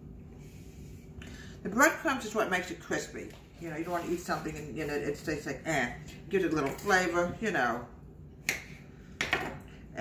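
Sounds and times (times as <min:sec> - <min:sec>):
knife tapping countertop: 0:09.2 - 0:09.6.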